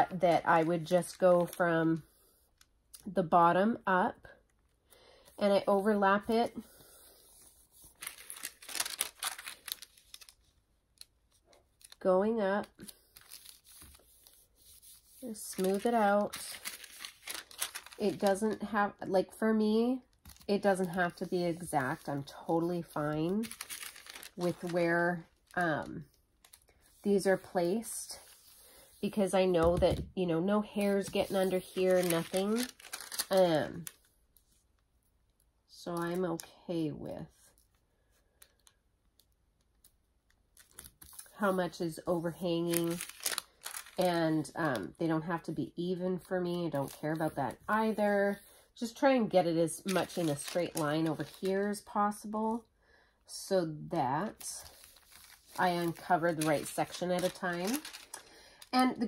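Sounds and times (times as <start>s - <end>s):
paper rustling: 7.0s - 12.0s, 12.8s - 18.7s, 20.2s - 29.8s, 30.7s - 33.9s, 42.6s - 44.1s, 49.8s - 51.7s, 54.3s - 58.3s.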